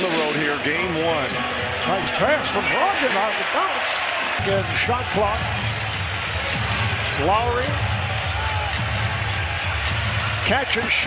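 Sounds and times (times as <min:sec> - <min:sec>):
arena crowd noise: 0:00.0 - 0:11.0
music: 0:00.0 - 0:11.0.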